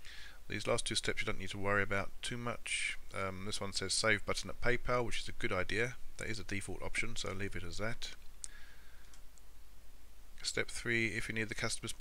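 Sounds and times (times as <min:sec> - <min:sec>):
low steady hum: 0:00.0 - 0:12.0
computer mouse clicking: 0:08.4 - 0:09.4.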